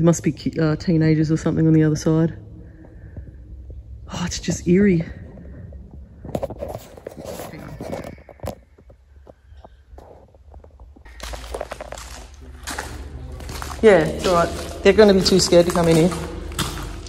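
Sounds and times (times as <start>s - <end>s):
footsteps on wet gravel: 11.0s - 17.0s.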